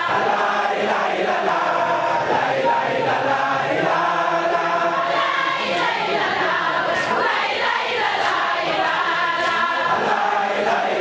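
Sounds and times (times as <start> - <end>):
crowd chanting in unison: 0.0 - 11.0.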